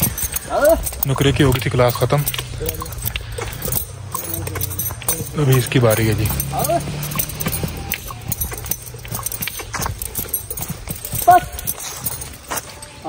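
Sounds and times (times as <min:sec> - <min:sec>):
horse hooves on grass: 0:00.0 - 0:13.0.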